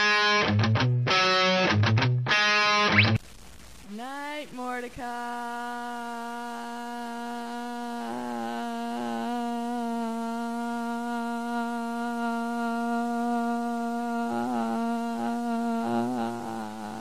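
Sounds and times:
person humming a long note: 0:05.2 - 0:17.0.

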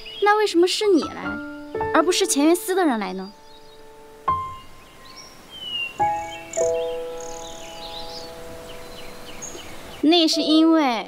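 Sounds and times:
faint bird chirps: 0:00.0 - 0:10.6
soft music score chords: 0:00.0 - 0:11.0.

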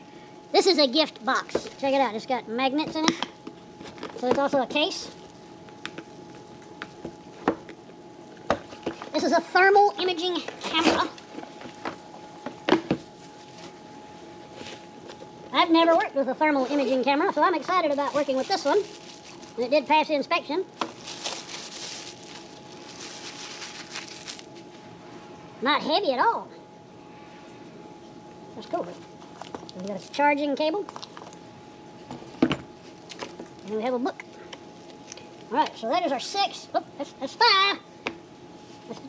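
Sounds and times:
plastic wrap crumpling: 0:03.8 - 0:07.3, 0:10.1 - 0:20.1, 0:20.7 - 0:24.7.

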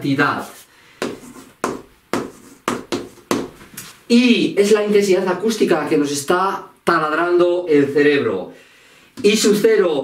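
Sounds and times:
chalk tapping and scratching: 0:01.0 - 0:04.0.

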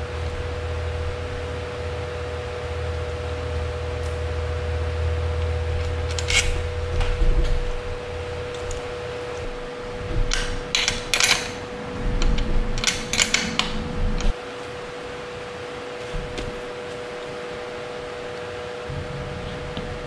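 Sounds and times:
steady hum: 0:00.0 - 0:20.0
small metal clicks: 0:05.8 - 0:07.1, 0:10.2 - 0:11.6, 0:12.2 - 0:14.3.

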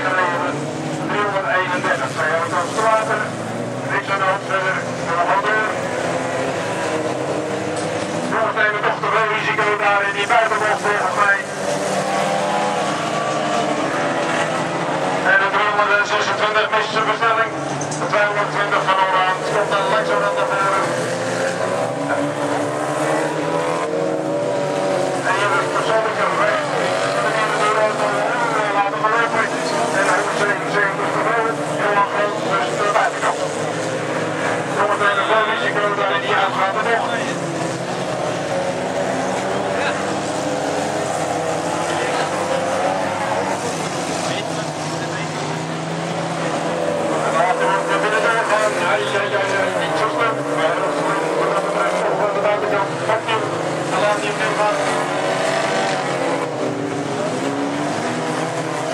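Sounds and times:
race car engines revving: 0:00.0 - 0:58.9.

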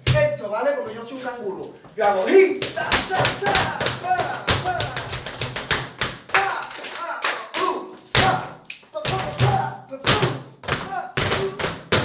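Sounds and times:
man calling out: 0:02.0 - 0:05.2, 0:06.3 - 0:11.7.

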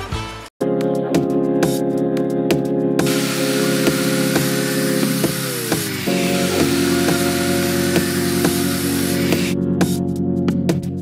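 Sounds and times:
background music with a beat: 0:00.0 - 0:11.0
angle grinder cutting metal: 0:03.0 - 0:09.6.

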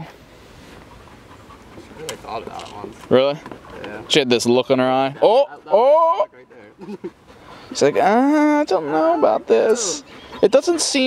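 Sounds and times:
dog panting faintly: 0:00.5 - 0:05.8, 0:06.4 - 0:11.0.

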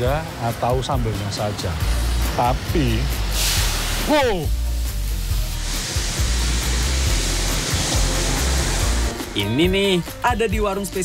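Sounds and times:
background music: 0:00.0 - 0:11.0
wok flame rushing hiss: 0:00.2 - 0:09.4.

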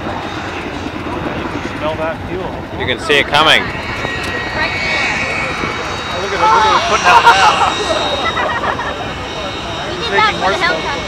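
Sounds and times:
turbine engine roar with high whine: 0:00.0 - 0:11.0.

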